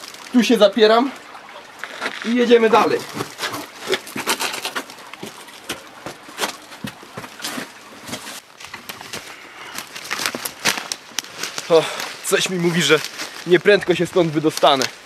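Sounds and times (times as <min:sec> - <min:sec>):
scraping against rock: 0:01.9 - 0:13.6.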